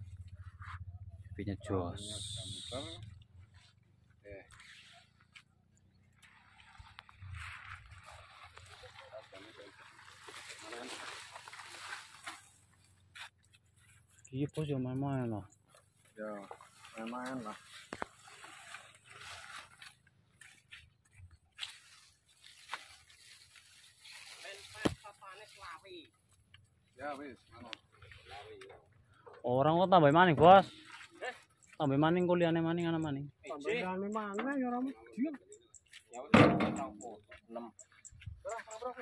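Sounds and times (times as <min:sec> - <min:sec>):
men talking: 0:01.3 - 0:03.0, 0:08.7 - 0:11.3, 0:14.3 - 0:17.8, 0:27.0 - 0:39.0
leaves rustling: 0:06.1 - 0:14.2, 0:15.8 - 0:26.4.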